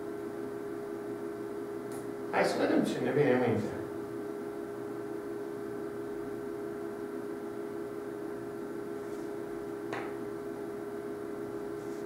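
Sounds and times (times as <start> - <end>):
steady hum of even tones: 0.0 - 12.0.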